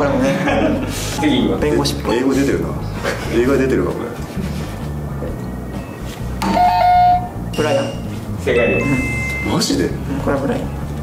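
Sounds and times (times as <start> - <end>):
quiz buzzer tone: 6.4 - 9.6.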